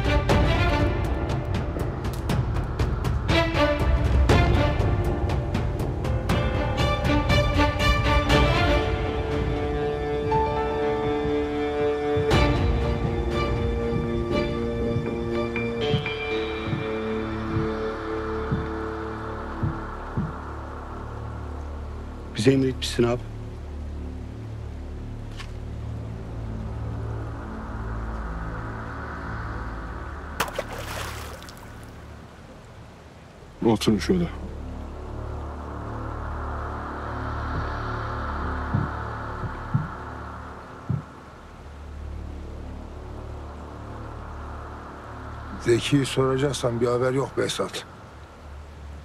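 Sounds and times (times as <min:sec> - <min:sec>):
sustained low music tones: 0:00.0 - 0:49.0
soft low drum thuds: 0:12.1 - 0:18.9, 0:19.5 - 0:20.5, 0:38.6 - 0:40.2, 0:40.8 - 0:41.2.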